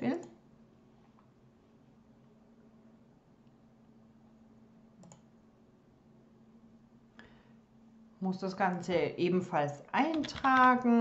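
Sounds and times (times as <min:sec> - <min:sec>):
faint steady hum: 0:00.0 - 0:11.0
computer mouse click: 0:05.0 - 0:05.3.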